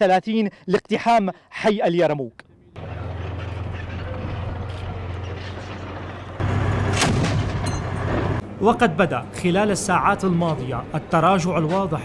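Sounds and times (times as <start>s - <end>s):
tracked vehicle engines rumbling: 2.4s - 12.0s
sharp gunshot: 6.9s - 8.4s.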